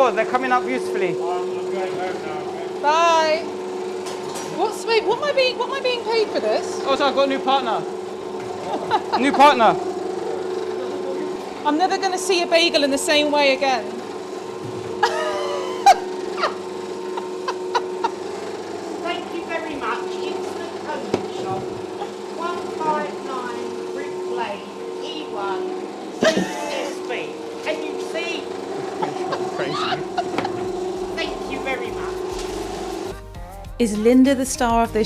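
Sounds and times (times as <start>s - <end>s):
machine humming: 0.0s - 33.3s.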